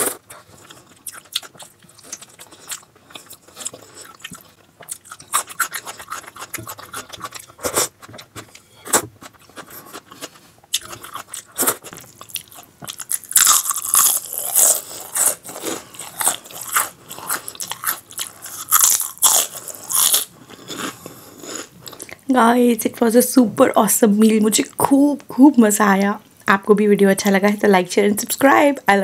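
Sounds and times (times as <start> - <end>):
person chewing and smacking: 0.0 - 22.2.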